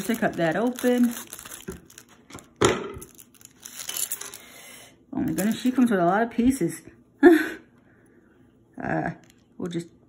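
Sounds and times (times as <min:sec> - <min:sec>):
scissors cutting plastic bag: 0:00.0 - 0:02.4, 0:03.0 - 0:04.3
plastic crinkling: 0:00.0 - 0:04.5.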